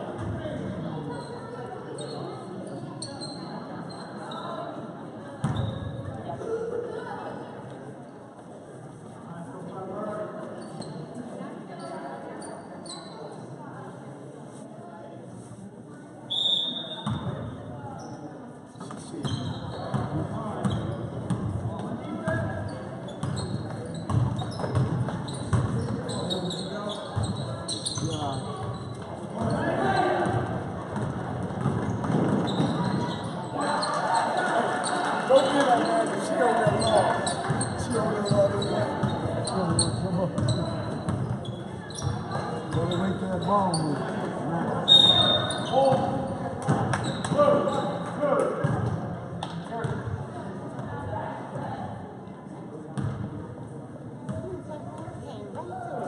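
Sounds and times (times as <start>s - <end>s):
shoes squeaking and player calls: 0.1s - 6.6s, 10.1s - 13.6s, 15.4s - 50.9s
basketball bouncing on court: 23.2s - 26.0s, 30.2s - 33.1s, 36.6s - 41.4s, 53.0s - 53.3s
spectators talking and shouting: 23.3s - 49.3s.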